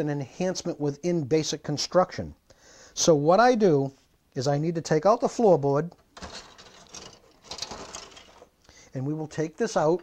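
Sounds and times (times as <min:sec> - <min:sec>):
plastic sprue rustling and clicking: 0:05.9 - 0:08.7.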